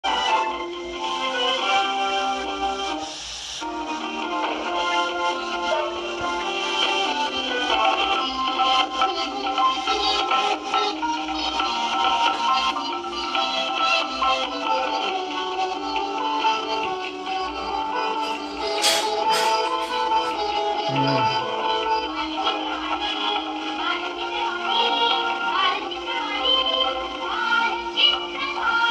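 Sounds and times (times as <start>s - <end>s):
bright tv theme melody: 0.1s - 22.8s.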